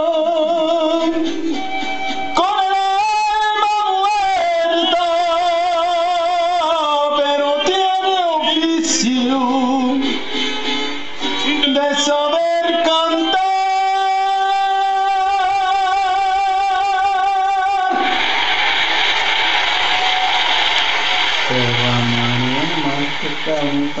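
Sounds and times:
man speaking: 21.5s - 24.0s.

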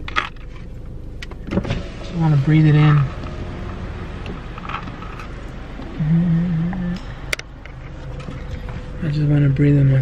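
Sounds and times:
low car rumble: 0.0s - 10.0s.

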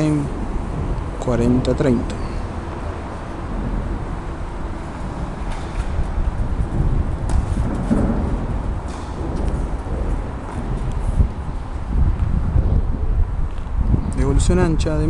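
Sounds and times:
low room rumble: 0.0s - 15.0s.

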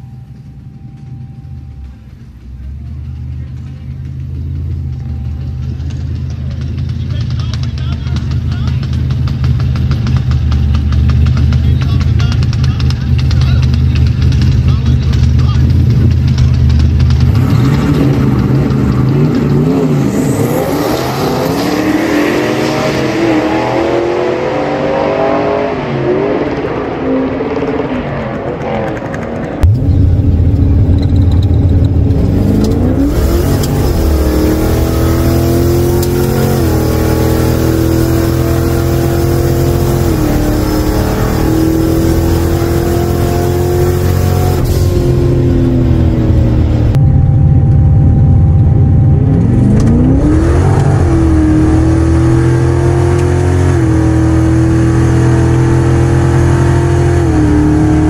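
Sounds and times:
engine rumble inside car cabin: 0.0s - 21.0s, 29.5s - 58.0s
car engines idling: 0.0s - 24.6s, 25.8s - 56.6s
cars accelerating through gears: 1.8s - 29.9s, 31.0s - 47.0s, 49.2s - 58.0s.

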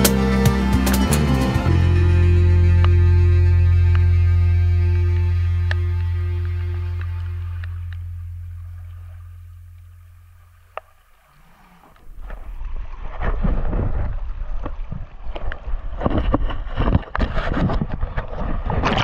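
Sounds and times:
background music: 0.0s - 8.7s.

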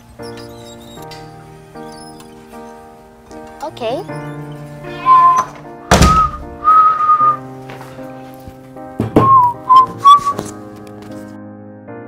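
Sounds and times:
soft background music chords: 0.0s - 12.0s
whistled tune: 4.3s - 7.5s, 9.2s - 10.5s
dull thuds: 5.2s - 6.6s.

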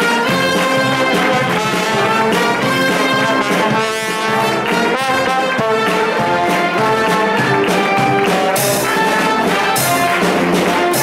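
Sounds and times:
brass band playing: 0.0s - 11.0s
snare drum beat: 0.0s - 11.0s.

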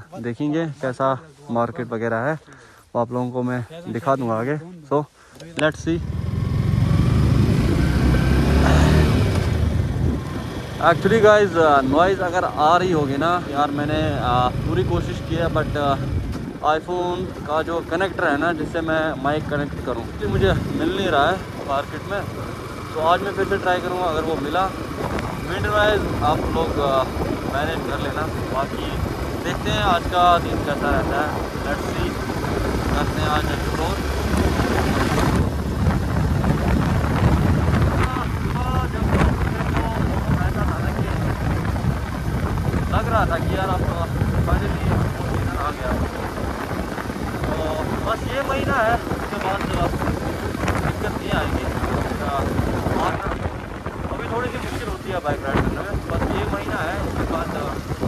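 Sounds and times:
road noise: 0.0s - 58.0s
motorcycle engine running: 5.8s - 58.0s
wind noise on microphone: 6.0s - 58.0s.

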